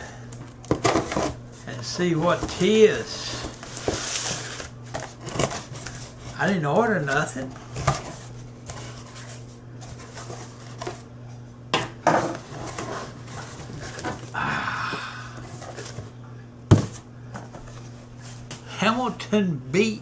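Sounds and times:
steady low hum: 0.0s - 20.0s
cardboard rustling and scraping: 0.7s - 11.4s, 12.0s - 14.3s, 15.4s - 18.5s.

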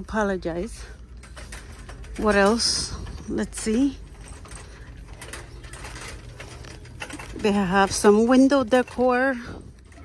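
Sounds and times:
rolling shopping cart rattling: 0.0s - 10.0s
steady low rumble: 0.0s - 10.0s.

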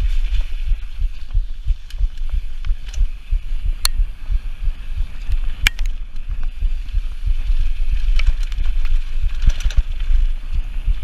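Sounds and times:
bike tyres rumbling over gravel: 0.0s - 11.0s
wind buffeting microphone: 0.0s - 11.0s
sharp clicks of bike parts: 1.2s - 3.2s, 3.8s - 4.0s, 5.2s - 10.5s.

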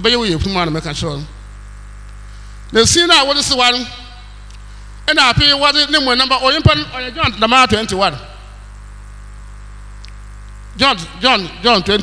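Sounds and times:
electrical mains hum: 0.0s - 12.0s
man speaking: 2.8s - 4.2s, 5.1s - 8.4s, 10.7s - 12.0s.

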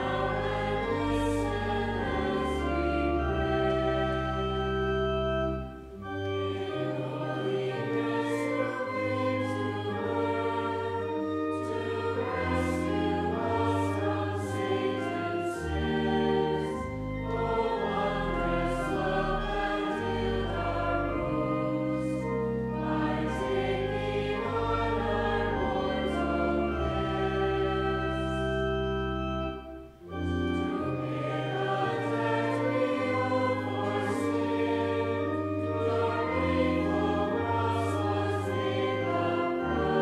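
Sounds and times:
choir singing: 0.0s - 40.0s
organ: 0.0s - 40.0s.

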